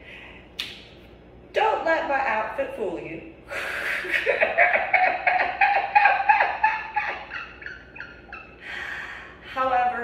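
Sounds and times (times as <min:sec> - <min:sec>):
woman laughing heartily: 0:03.5 - 0:09.1.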